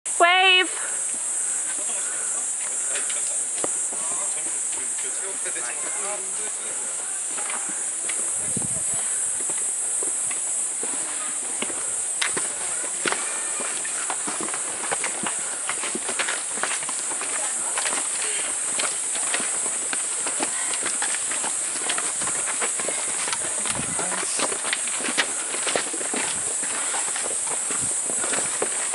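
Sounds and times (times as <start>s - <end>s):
steady high hiss: 0.1s - 28.9s
footsteps on rock and grit: 9.4s - 28.9s
distant people talking: 10.6s - 25.6s.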